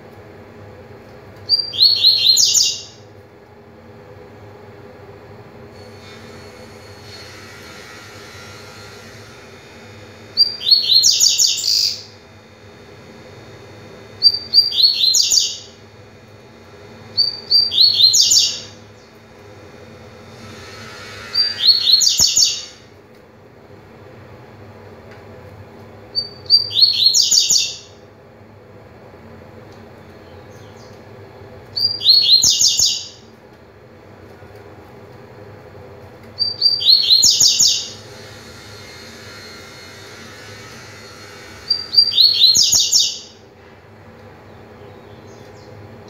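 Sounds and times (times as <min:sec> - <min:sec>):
bird singing rapid high notes: 0:14.2 - 0:15.7, 0:17.2 - 0:18.7, 0:21.4 - 0:22.8, 0:31.8 - 0:33.2, 0:36.4 - 0:38.0.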